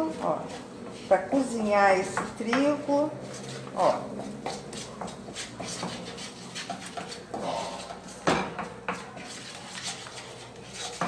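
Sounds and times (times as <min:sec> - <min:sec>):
wooden spoon scraping a pan: 0:00.0 - 0:11.0.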